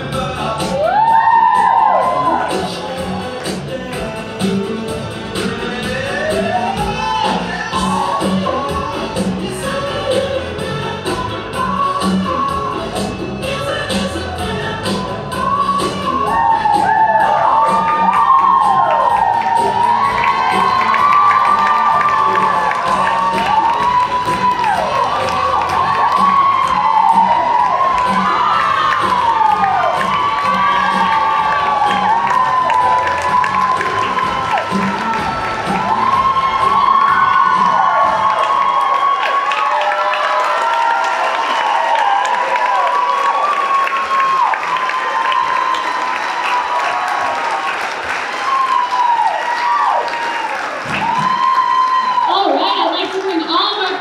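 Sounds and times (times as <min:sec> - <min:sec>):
children cheering: 0:00.2 - 0:03.5, 0:05.9 - 0:10.4, 0:14.9 - 0:54.0.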